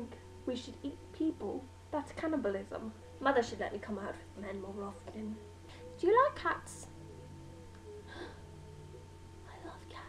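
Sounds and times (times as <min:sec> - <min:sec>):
woman speaking softly: 0:00.0 - 0:05.4
steady low hum: 0:00.0 - 0:10.0
soft whisper-like vocal sound: 0:09.4 - 0:10.0.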